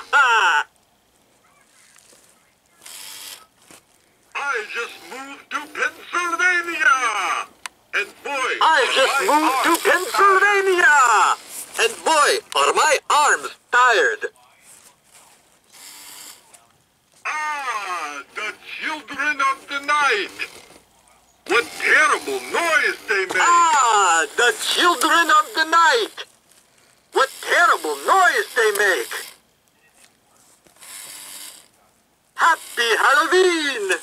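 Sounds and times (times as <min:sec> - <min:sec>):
small gear motor whirring: 0:02.8 - 0:03.5, 0:08.9 - 0:10.3, 0:15.7 - 0:16.5, 0:20.2 - 0:20.8, 0:21.4 - 0:26.1, 0:27.1 - 0:29.4, 0:30.8 - 0:31.7, 0:32.4 - 0:33.4
recorded voice through speaker: 0:04.4 - 0:14.7, 0:17.3 - 0:26.3, 0:27.2 - 0:30.1, 0:32.4 - 0:34.0.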